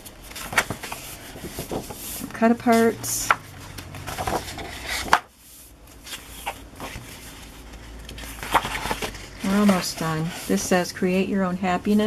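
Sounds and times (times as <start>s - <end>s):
paper rustling and flapping: 0.0s - 5.3s, 5.9s - 10.8s.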